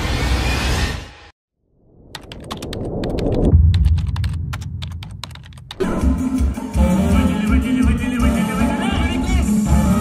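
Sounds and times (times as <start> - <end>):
low rumble: 1.8 - 5.8
rapid sharp clicks: 2.1 - 5.8.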